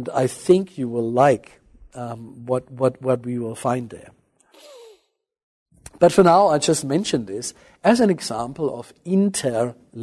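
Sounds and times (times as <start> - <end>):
man sighing: 4.5 - 5.1.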